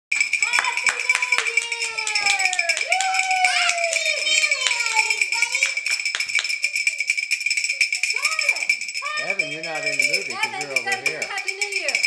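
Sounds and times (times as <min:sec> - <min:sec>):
sharp claps: 0:00.1 - 0:06.8.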